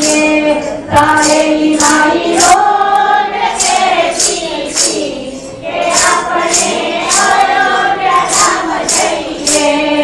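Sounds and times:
bright percussive beat: 0.0 - 10.0
congregation singing in unison: 0.0 - 10.0.

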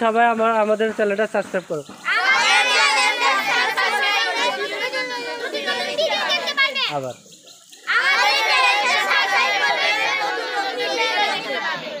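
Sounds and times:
children calling out together: 2.0 - 12.0.

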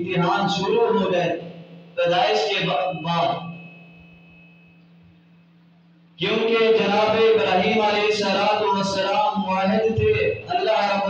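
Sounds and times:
faint high whine: 0.0 - 11.0
steady low hum: 0.0 - 11.0.

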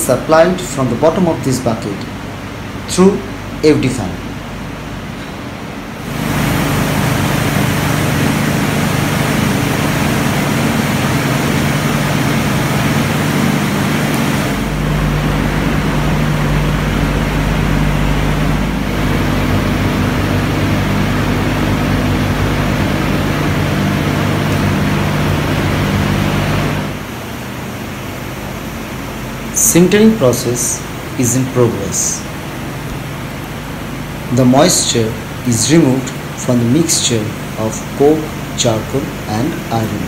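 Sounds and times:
industrial air blower running: 0.0 - 40.0.

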